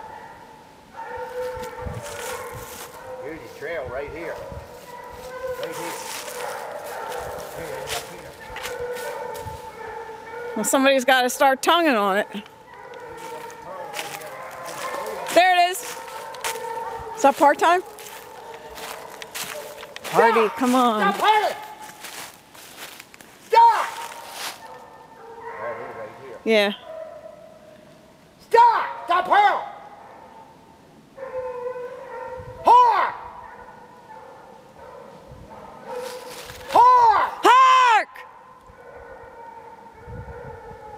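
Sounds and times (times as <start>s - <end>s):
hound baying: 0.0s - 3.5s, 4.3s - 11.0s, 12.1s - 22.9s, 23.8s - 27.8s, 31.2s - 37.4s.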